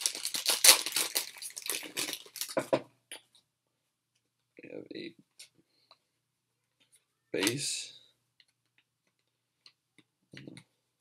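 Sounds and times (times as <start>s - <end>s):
foil wrapper crinkling: 0.0s - 2.6s.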